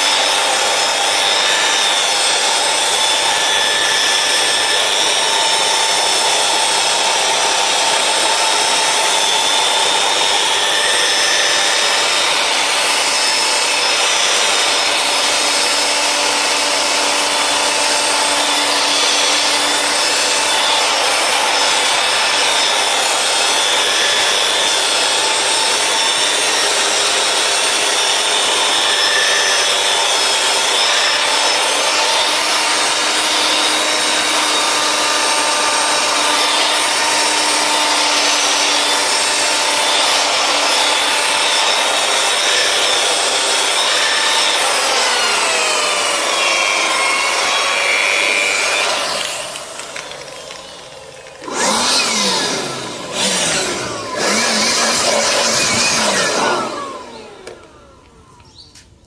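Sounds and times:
rotary polisher motor whine: 0.0s - 58.9s.

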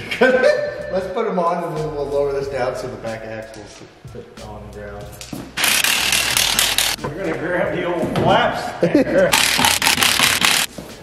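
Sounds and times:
pneumatic impact wrench rattling: 5.6s - 7.0s, 9.3s - 10.7s.

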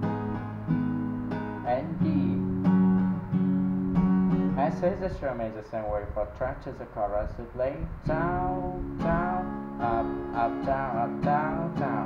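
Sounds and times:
acoustic guitar strummed chords: 0.0s - 5.5s, 7.6s - 12.0s.

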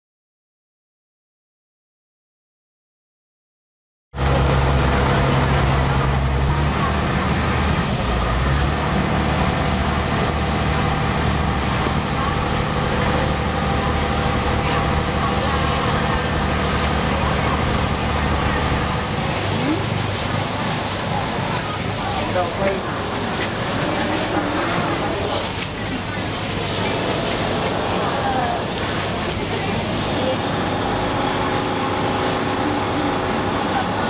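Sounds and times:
boat engine droning: 4.2s - 34.0s
passenger voices: 4.2s - 34.0s.

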